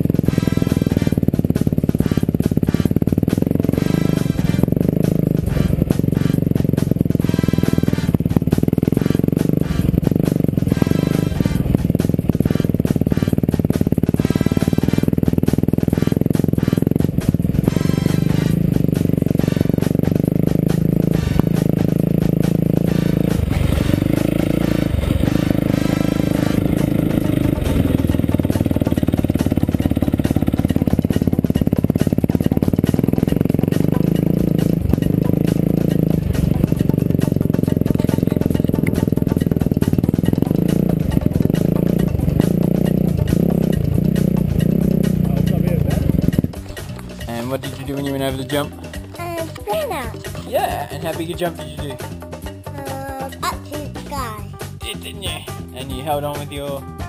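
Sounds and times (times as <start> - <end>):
dirt bike engine running: 0.0 - 57.0
music: 0.0 - 57.0.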